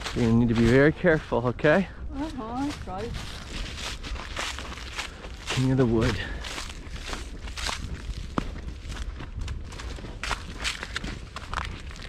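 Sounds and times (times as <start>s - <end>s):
footsteps crunching through dry leaves: 0.0s - 1.3s, 2.0s - 12.0s.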